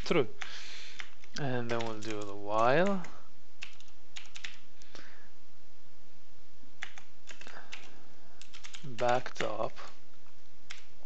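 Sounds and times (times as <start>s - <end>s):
computer keyboard typing: 0.0s - 4.7s, 6.8s - 10.0s, 10.7s - 11.0s.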